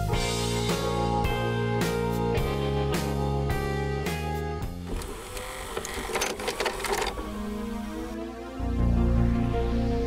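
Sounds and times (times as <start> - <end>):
tape transport mechanical rattle: 4.8 - 7.8.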